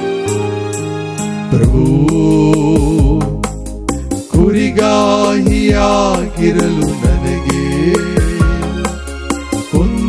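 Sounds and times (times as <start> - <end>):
keyboard chords: 0.0 - 10.0
person singing with vibrato: 1.5 - 3.4, 4.2 - 9.0, 9.6 - 10.0
deep bass: 1.5 - 10.0
light beat: 1.5 - 10.0.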